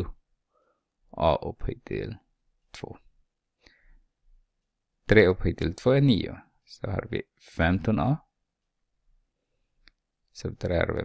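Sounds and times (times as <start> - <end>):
man speaking: 0.0 - 0.2, 1.1 - 3.1, 5.0 - 8.3, 10.3 - 11.0.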